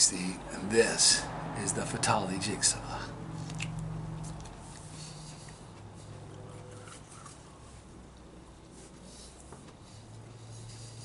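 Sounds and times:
quiet chewing: 3.4s - 10.0s.

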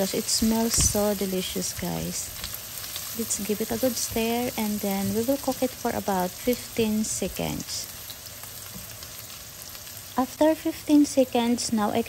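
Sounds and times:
onion and garlic sizzling in oil: 0.0s - 12.0s.

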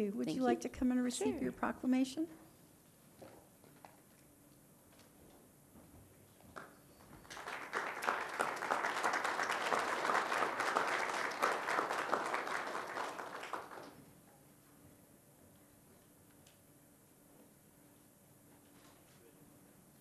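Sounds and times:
people applauding: 6.6s - 14.1s.

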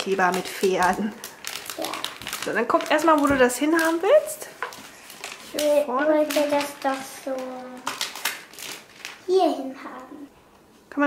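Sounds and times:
sticker sheet crinkling: 0.0s - 9.3s.

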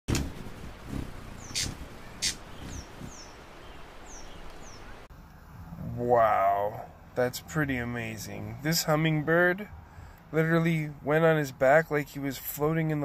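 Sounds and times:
background hiss: 0.1s - 13.0s
high bird chirps: 1.2s - 5.1s.

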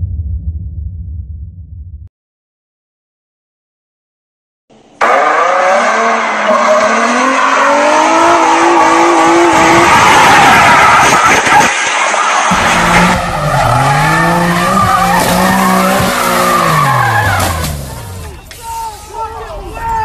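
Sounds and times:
car engine revving: 5.0s - 18.4s
tyre squeal: 9.6s - 19.1s.

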